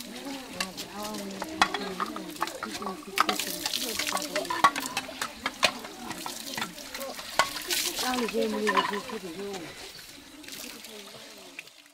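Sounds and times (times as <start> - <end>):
bowls clinking against stone basin: 0.0 - 10.1
tap running with water splashing: 0.0 - 11.9
voices chattering: 0.0 - 11.9.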